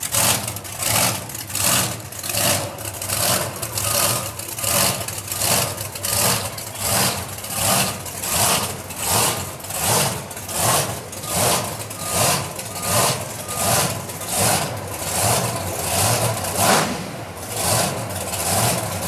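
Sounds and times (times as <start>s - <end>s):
large engine idling: 0.0s - 19.0s.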